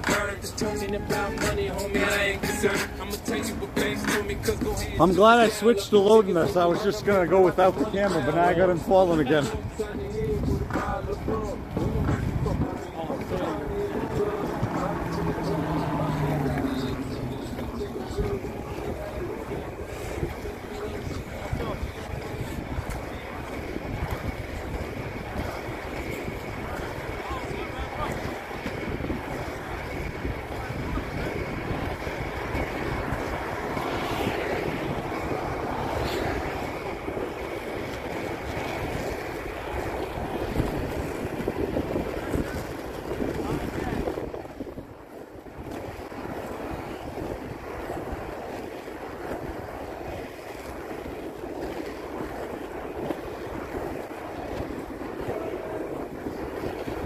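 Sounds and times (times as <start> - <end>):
skate wheels rolling on asphalt: 0.0 - 57.0
wind buffeting microphone: 0.0 - 57.0.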